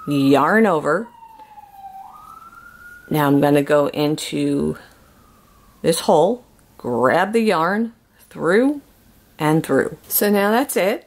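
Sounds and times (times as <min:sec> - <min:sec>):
siren wailing: 0:00.0 - 0:06.5.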